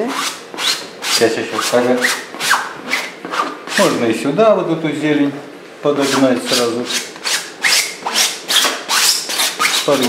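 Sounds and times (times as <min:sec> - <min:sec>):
palette knife scraping paint: 0:06.0 - 0:10.0.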